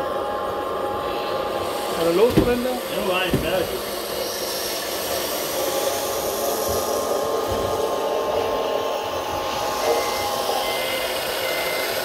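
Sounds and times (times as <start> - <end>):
electric motors whining: 0.0 - 12.0.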